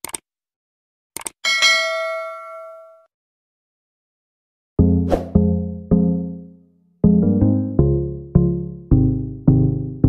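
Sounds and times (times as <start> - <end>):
notification bell ding: 1.5 - 3.1.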